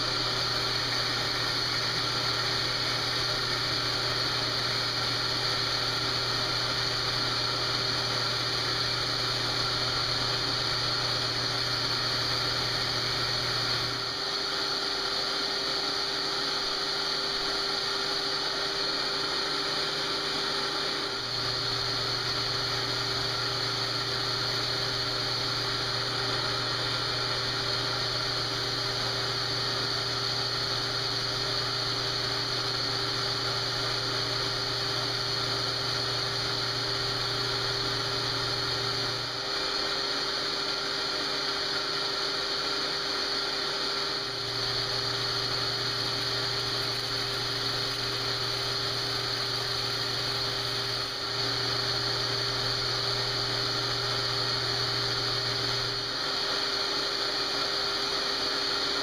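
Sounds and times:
lathe running: 0.0 - 59.0.

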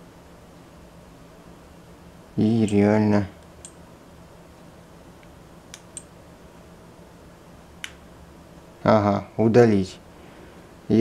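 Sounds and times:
man speaking: 2.4 - 3.4, 8.8 - 10.0.

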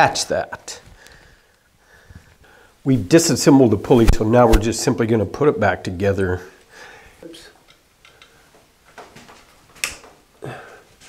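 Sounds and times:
small metal clicks and taps: 7.6 - 8.4.

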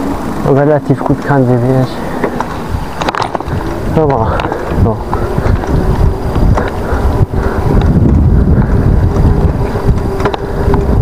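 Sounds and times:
bike tyres rolling on asphalt: 0.0 - 11.0
wind buffeting microphone: 0.0 - 11.0.

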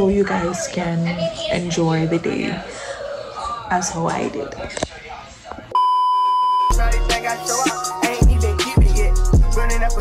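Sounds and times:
electronic beep: 5.8 - 6.7
hip hop music with heavy bass: 6.7 - 10.0.

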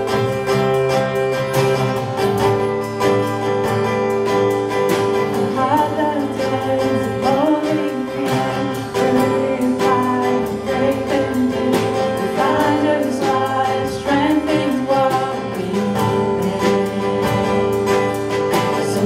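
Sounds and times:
strummed acoustic guitar: 0.0 - 19.0
woman singing into microphone: 5.4 - 19.0.

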